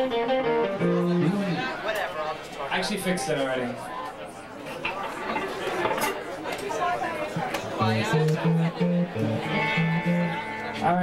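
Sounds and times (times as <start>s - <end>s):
band playing: 0.0s - 1.7s, 7.8s - 11.0s
low guitar notes: 0.0s - 1.7s, 7.8s - 11.0s
crowd chatter: 0.0s - 11.0s.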